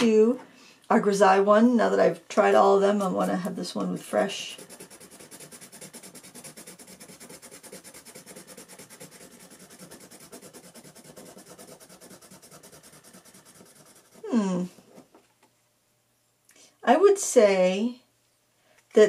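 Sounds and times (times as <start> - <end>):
pencil scratching on paper: 3.0 - 15.0.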